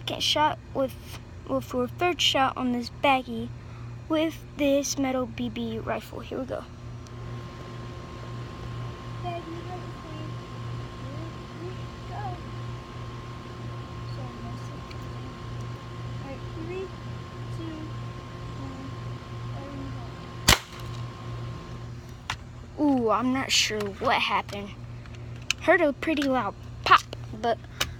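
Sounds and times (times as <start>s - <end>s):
steady low hum: 0.0s - 27.9s
air rifle firing pop: 20.4s - 21.0s.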